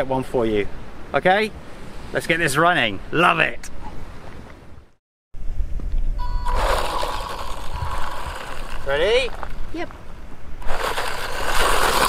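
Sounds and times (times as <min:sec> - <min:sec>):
wind rumble on microphone: 0:05.4 - 0:11.0
tyres hissing on gravel: 0:06.4 - 0:09.9, 0:10.6 - 0:12.0.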